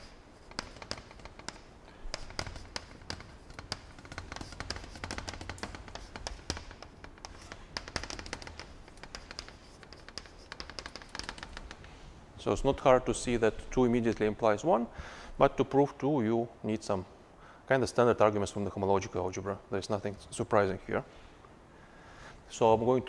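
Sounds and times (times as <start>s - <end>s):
chalk tapping on blackboard: 0.0s - 11.9s
faint low room hum: 0.0s - 23.0s.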